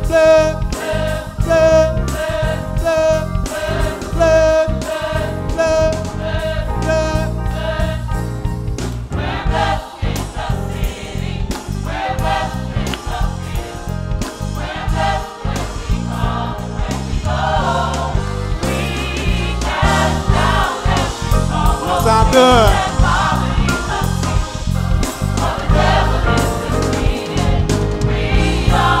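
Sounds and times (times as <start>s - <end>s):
bass guitar: 0.0s - 17.2s, 21.2s - 29.0s
gospel choir singing: 0.0s - 29.0s
keyboard: 0.0s - 29.0s.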